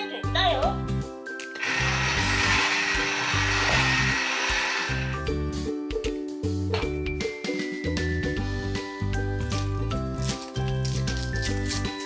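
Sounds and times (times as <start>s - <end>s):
children's background music: 0.0s - 12.0s
toy cash register hissing: 1.6s - 5.2s.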